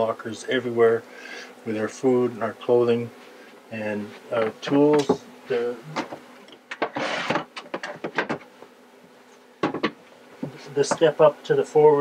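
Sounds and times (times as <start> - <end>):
faint steady hum: 0.0 - 12.0
plastic bin scraping on wood: 6.8 - 8.2.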